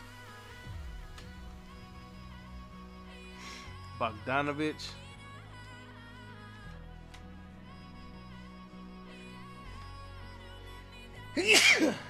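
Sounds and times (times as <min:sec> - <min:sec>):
background music: 0:00.0 - 0:12.0
man sneezing loudly: 0:11.4 - 0:12.0.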